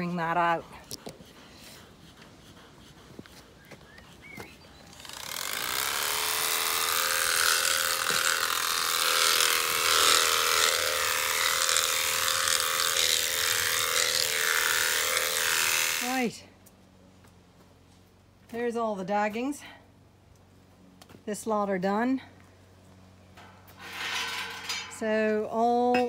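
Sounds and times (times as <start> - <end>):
electric sheep shears buzzing: 4.8 - 16.4.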